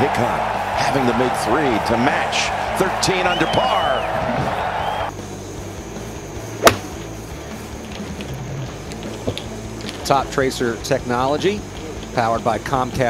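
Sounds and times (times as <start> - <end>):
gallery cheering: 0.0 - 5.2
golf club striking ball: 6.6 - 7.1.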